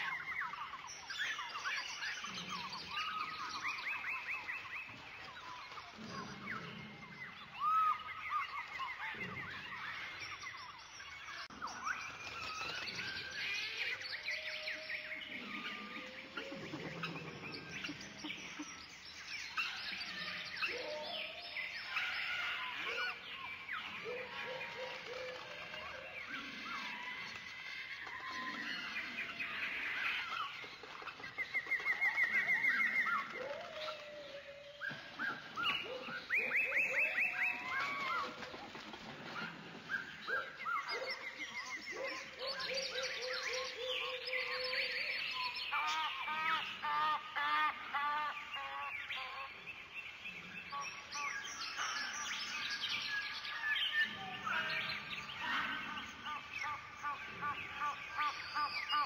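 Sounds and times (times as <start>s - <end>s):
birds chirping and calling: 0.0s - 59.0s.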